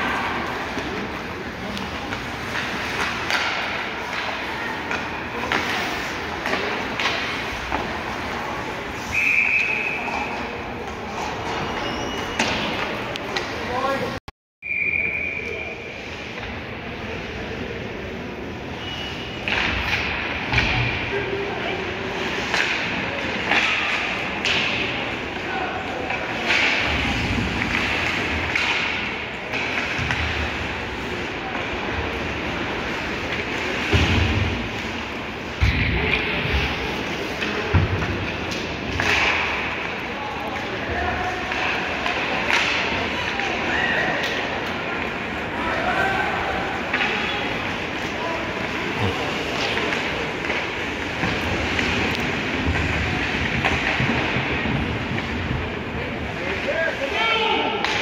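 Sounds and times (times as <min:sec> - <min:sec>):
hockey sticks and puck clacking: 0:00.0 - 0:14.2, 0:19.2 - 0:58.0
echoing voices in rink: 0:00.0 - 0:58.0
whistle blast: 0:09.0 - 0:10.2, 0:14.6 - 0:15.8.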